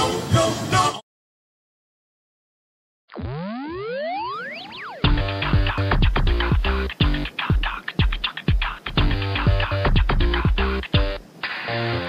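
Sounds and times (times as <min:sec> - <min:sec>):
cartoon rising boing: 0:03.1 - 0:05.8.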